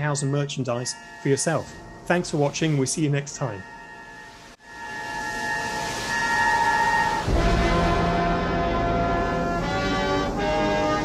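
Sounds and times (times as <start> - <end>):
rising whoosh with held tone: 0.0 - 9.8.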